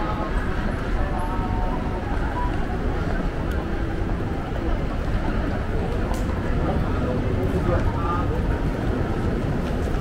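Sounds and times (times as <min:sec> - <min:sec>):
passers-by talking: 0:00.0 - 0:10.0
traffic rumble: 0:00.0 - 0:10.0.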